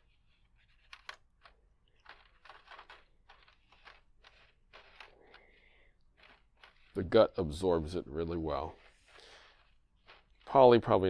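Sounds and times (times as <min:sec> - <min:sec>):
marker scratching on racket strings: 0:00.0 - 0:11.0.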